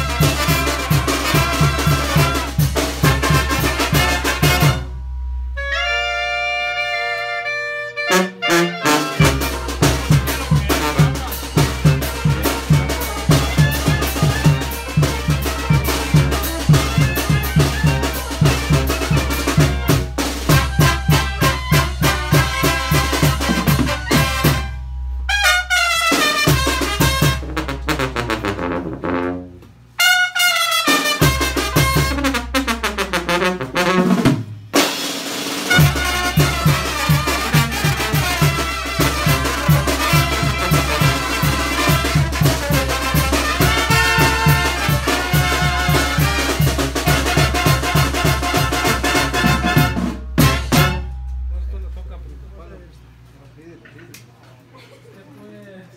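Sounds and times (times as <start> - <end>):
brass band playing: 0.0 - 51.6.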